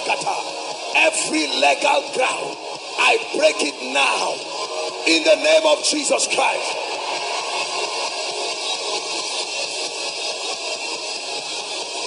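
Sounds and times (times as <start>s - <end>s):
congregation praying aloud: 5.1s - 6.8s.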